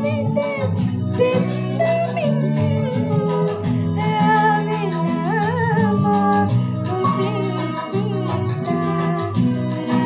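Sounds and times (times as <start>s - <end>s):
instrumental backing track: 0.0s - 10.0s
woman singing into microphone: 0.0s - 10.0s.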